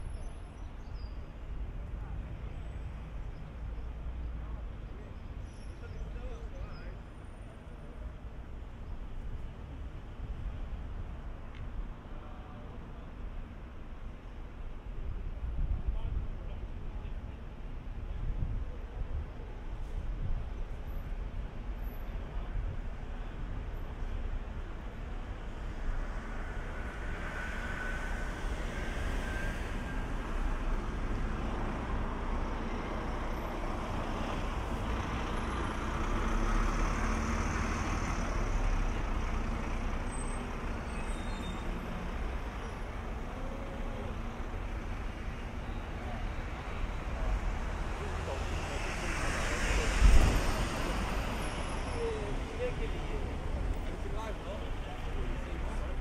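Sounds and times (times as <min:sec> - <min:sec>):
cars passing: 0:22.9 - 0:56.0.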